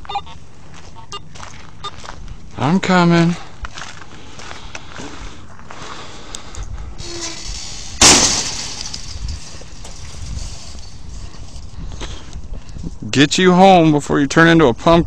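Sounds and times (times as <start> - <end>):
loud hissing crash: 7.0 - 10.5
camera handling rumble and bumps: 7.4 - 12.8.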